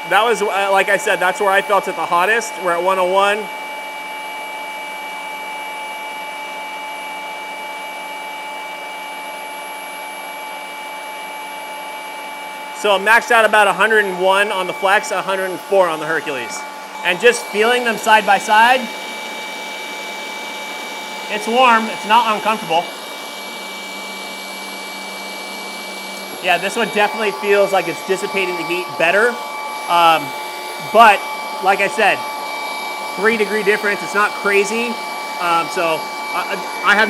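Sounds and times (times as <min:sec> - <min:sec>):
rotary polishers whining: 0:00.0 - 0:37.0.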